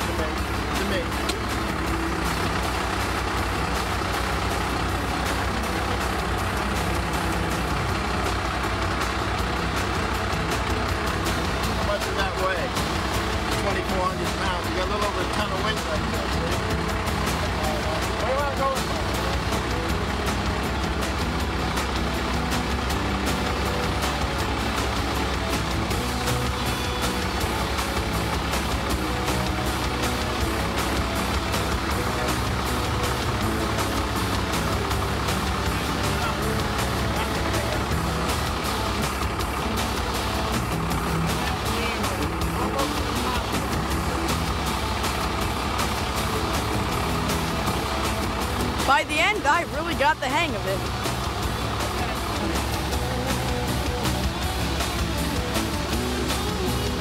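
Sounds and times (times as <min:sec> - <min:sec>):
voice: 0:00.0 - 0:02.0, 0:10.9 - 0:22.0, 0:33.4 - 0:40.4, 0:41.1 - 0:44.9, 0:48.7 - 0:55.6
background music: 0:00.0 - 0:57.0
diesel engine running: 0:00.0 - 0:57.0.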